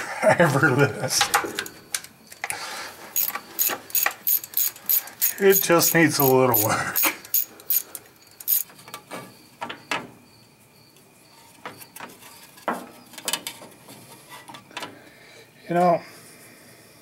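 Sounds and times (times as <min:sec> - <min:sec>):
socket ratchet clicking: 0:03.2 - 0:08.7.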